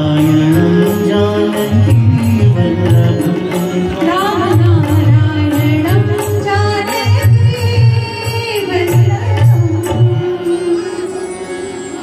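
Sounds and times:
live devotional music: 0.0s - 12.0s.

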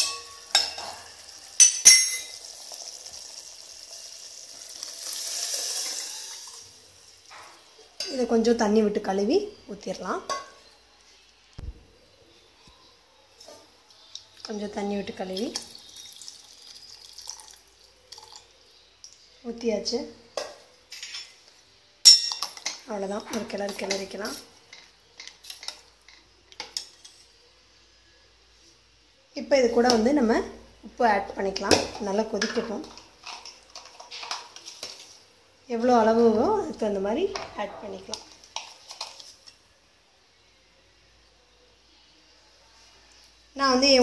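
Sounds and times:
steel ladle clinking against pot: 0.0s - 0.9s, 1.6s - 2.4s, 22.1s - 22.8s.

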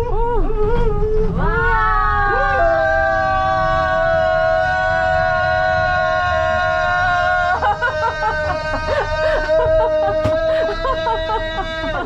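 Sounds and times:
person screaming a long note: 1.4s - 12.0s.

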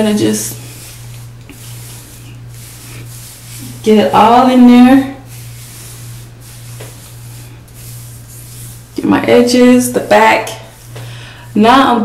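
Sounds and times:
hands rubbing hair: 0.0s - 9.1s, 10.6s - 11.1s
steady low hum: 0.0s - 12.0s.

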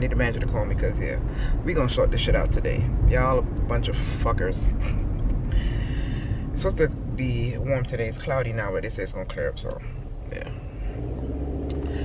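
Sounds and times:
car engine drone: 0.0s - 12.0s.

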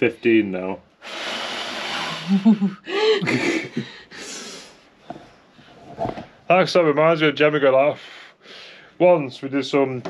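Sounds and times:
person laughing breathily: 1.8s - 4.6s.

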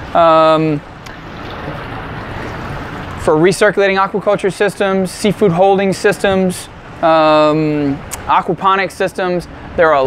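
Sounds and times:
pump humming: 0.0s - 10.0s
water pouring into tank: 1.0s - 3.3s.

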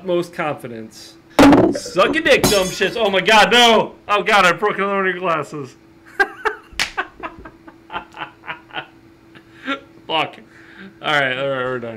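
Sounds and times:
men laughing hard: 6.1s - 9.8s.

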